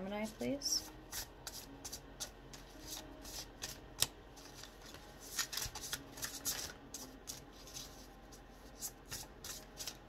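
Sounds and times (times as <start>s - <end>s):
cards being shuffled: 1.1s - 10.0s.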